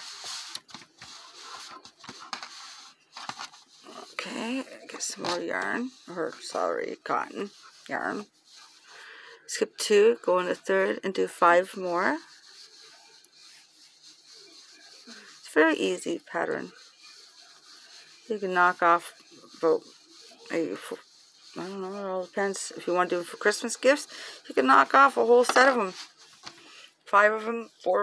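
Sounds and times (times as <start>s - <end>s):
hands rustling cloth on paper: 0.0s - 9.0s
yarn rubbing and rustling: 0.0s - 28.0s.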